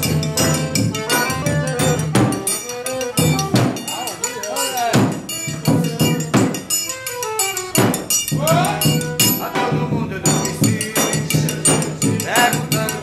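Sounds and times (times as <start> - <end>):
ringing metal triangle: 0.0 - 9.5
accordion melody: 0.0 - 13.0.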